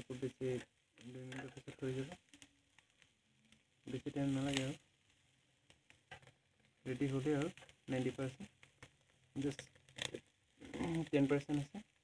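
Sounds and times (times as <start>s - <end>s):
person asking a question: 9.4s - 11.9s.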